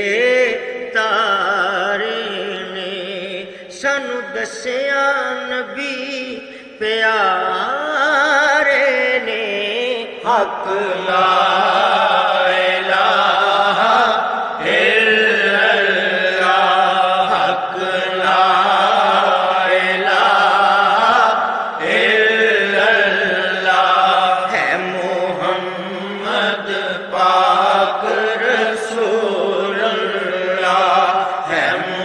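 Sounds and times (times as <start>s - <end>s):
voices chanting devotional song: 0.0s - 32.0s.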